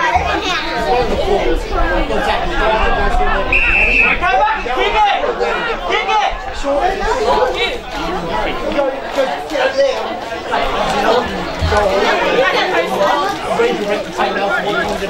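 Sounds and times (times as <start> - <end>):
people talking at once: 0.0 - 15.0.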